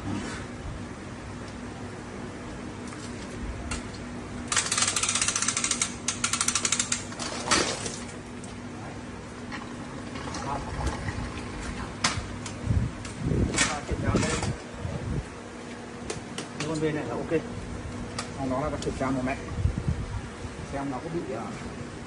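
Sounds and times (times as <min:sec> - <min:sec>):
ratchet clicking rapidly: 0:04.5 - 0:07.1.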